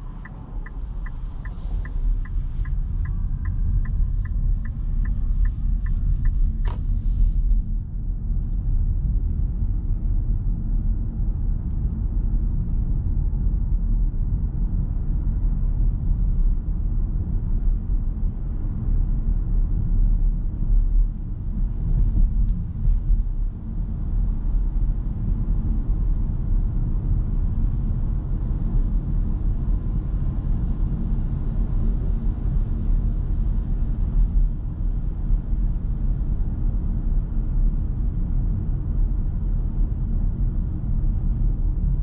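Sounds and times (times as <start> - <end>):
road and tyre noise in car: 0.0 - 42.0.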